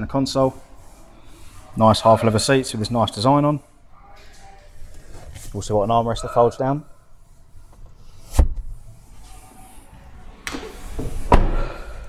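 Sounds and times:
thud: 11.0s - 11.7s
car door slamming: 11.0s - 11.8s.

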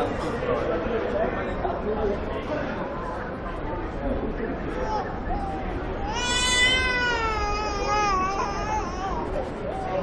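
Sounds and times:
faint street chatter: 0.0s - 10.0s
long wailing vocal cry: 5.4s - 9.3s.

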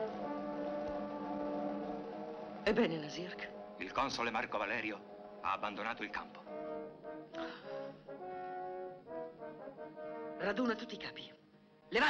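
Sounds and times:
orchestral brass chords: 0.0s - 11.2s.

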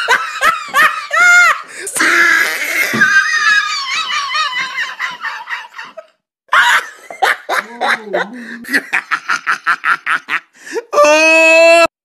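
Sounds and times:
woman giggling: 2.9s - 9.2s.

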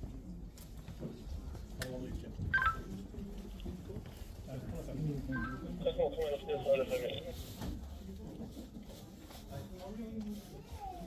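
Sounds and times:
murmur of voices: 1.2s - 11.0s
short electronic beeps: 2.6s - 2.9s, 5.4s - 5.8s.

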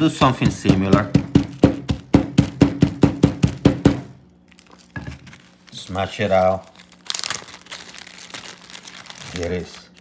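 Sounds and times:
wooden pestle pounding garlic: 0.0s - 4.2s.

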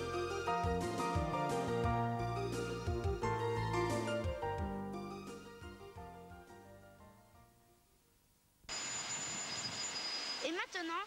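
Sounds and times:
high-pitched whines: 8.7s - 10.6s.

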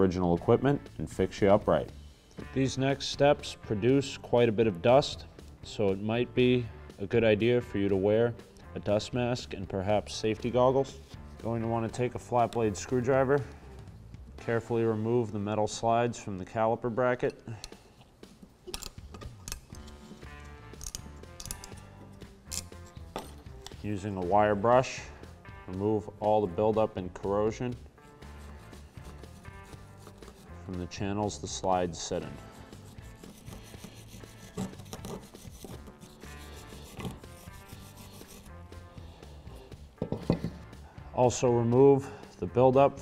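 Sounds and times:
soft background music: 0.0s - 43.0s
screwdriver metallic clicks and scrapes: 17.3s - 23.8s, 33.1s - 38.4s
wire brush scrubbing metal: 28.2s - 30.9s, 32.0s - 38.6s.

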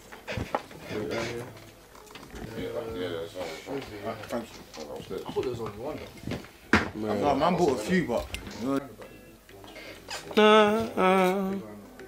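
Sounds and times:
indistinct voices: 0.3s - 12.0s
man humming: 10.3s - 11.8s.

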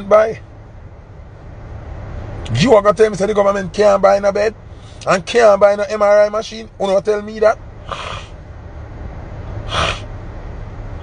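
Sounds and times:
low rumble inside car cabin: 0.0s - 11.0s
man breathing: 4.6s - 5.1s.

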